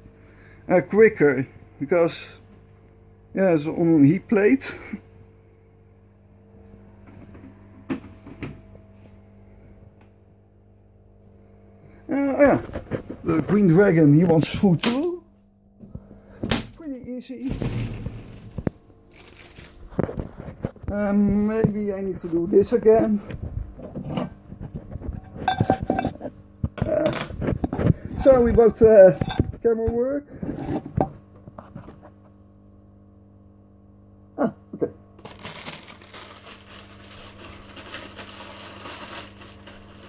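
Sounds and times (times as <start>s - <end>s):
aquarium equipment hum: 0.0s - 40.0s.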